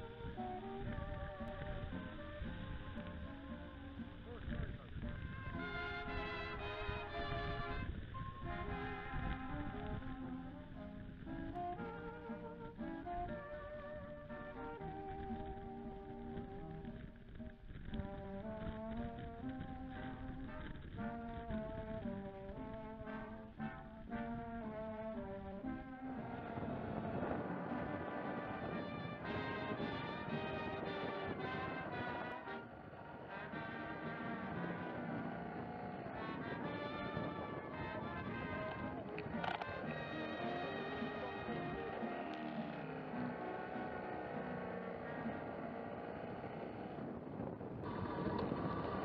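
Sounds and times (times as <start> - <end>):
instrumental background music: 0.0 - 46.4.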